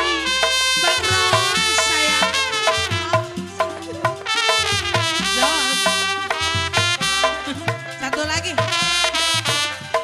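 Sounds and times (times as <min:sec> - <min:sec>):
melodic lead line: 0:00.0 - 0:08.8
percussion strikes: 0:00.0 - 0:10.0.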